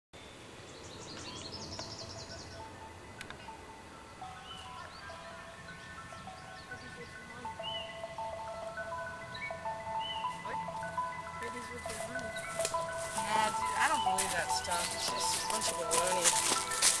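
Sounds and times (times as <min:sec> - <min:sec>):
birds chirping: 0:00.2 - 0:17.0
slow melody music: 0:01.2 - 0:17.0.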